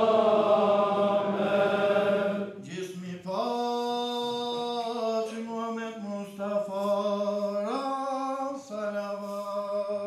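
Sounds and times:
man singing a chant: 2.6 - 10.0.

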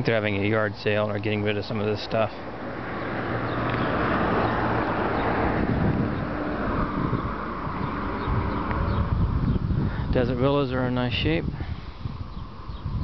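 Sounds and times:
wind rumble on microphone: 2.5 - 13.0
traffic hiss: 7.3 - 12.8.

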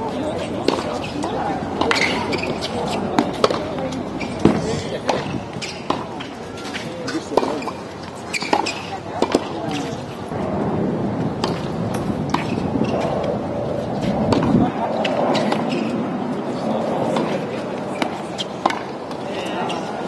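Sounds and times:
tennis ball struck by racquets: 0.6 - 10.0, 11.4 - 13.2, 14.0 - 15.9, 17.1 - 19.2.

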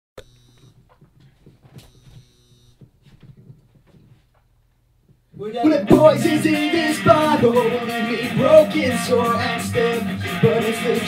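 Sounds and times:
electrical hum: 0.2 - 4.1
soft knocks and rustles: 0.8 - 2.2, 2.8 - 5.3.

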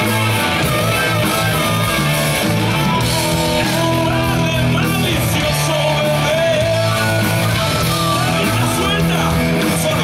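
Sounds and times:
harmonica wailing: 0.0 - 4.6
live rock band playing: 0.0 - 10.0.

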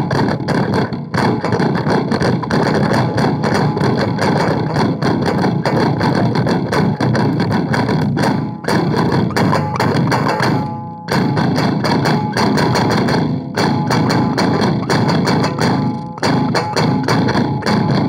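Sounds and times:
distorted electric guitar fast picking: 0.0 - 18.0.

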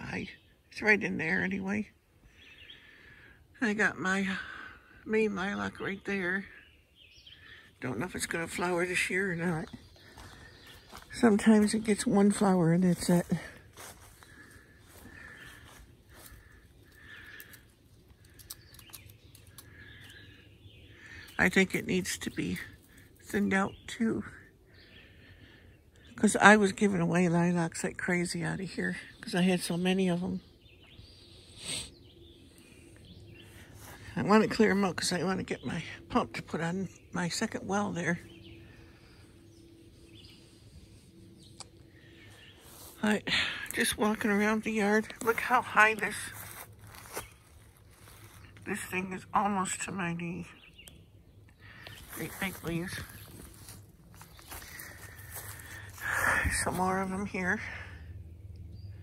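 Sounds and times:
distant bird chirps: 0.0 - 59.0
light crackles: 14.3 - 23.4.

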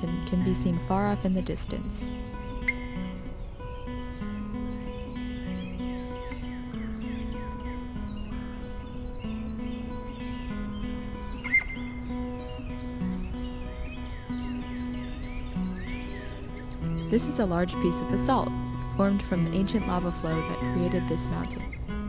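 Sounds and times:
birds singing and chirping: 0.0 - 22.0
instrumental background music: 0.0 - 22.0.

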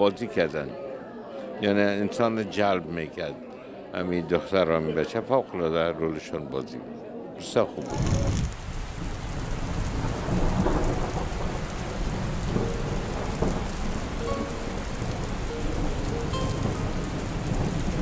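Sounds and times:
heavy rain: 7.8 - 18.0.

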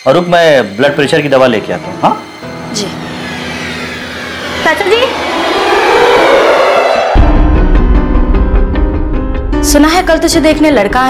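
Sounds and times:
suspenseful drone score: 0.0 - 11.0
percussion hit: 2.4 - 10.8.

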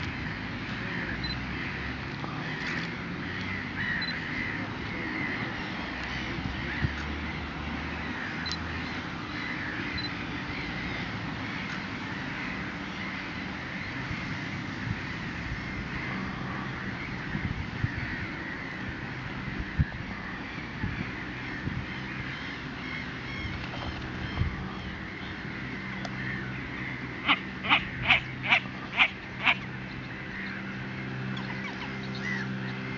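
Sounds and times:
distant birdsong: 0.0 - 32.9
harsh bird calls: 15.5 - 32.9.

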